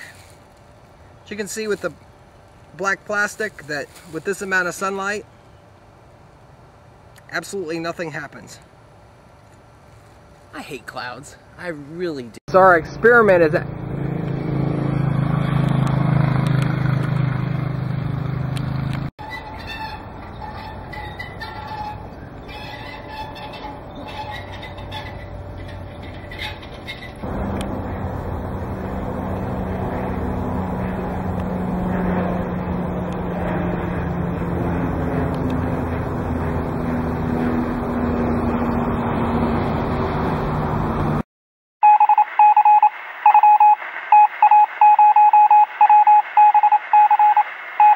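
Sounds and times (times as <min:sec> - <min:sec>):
propeller airplane flying overhead: 0:12.5 - 0:41.2
motor engine hum: 0:12.7 - 0:19.1, 0:23.4 - 0:41.2
loud electronic beeps: 0:41.8 - 0:47.9.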